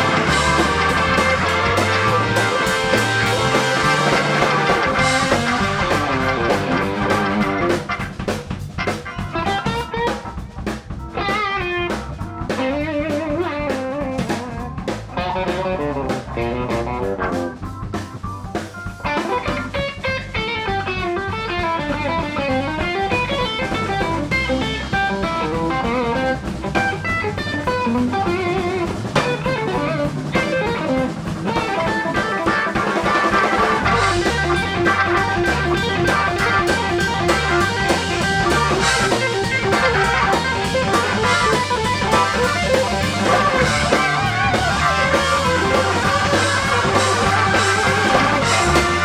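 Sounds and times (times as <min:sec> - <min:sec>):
drum kit: 0:00.0 - 0:49.0
electric bass: 0:00.0 - 0:49.0
electric guitar melody: 0:00.0 - 0:49.0
organ chords: 0:00.0 - 0:49.0.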